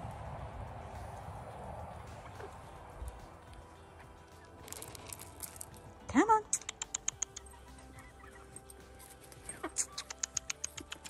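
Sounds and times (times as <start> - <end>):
feed pellets ticking on dry leaves: 3.1 - 7.5.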